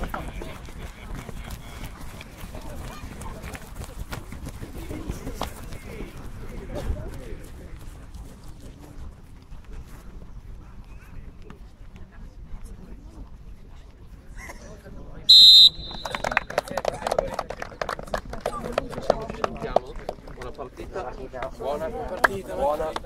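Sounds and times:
footsteps jogging on grass: 0.2 - 11.9.

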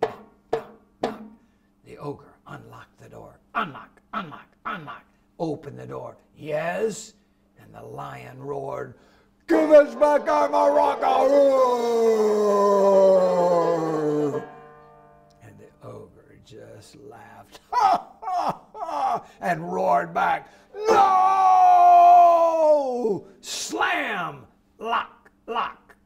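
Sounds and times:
knocks on a banjo: 0.0 - 1.4
man imitating lion roar: 9.5 - 14.4.

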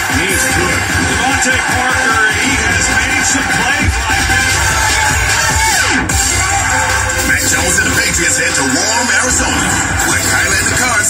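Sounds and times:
electronic theme music: 0.0 - 11.0.

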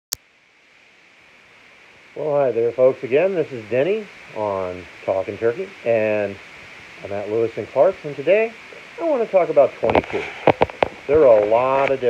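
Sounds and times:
room noise hiss: 0.2 - 12.0.

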